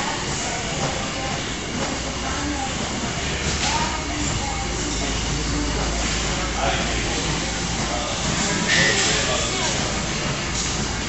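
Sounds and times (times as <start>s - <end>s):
faint voices: 0.0s - 11.0s
gym room rumble and hiss: 0.0s - 11.0s.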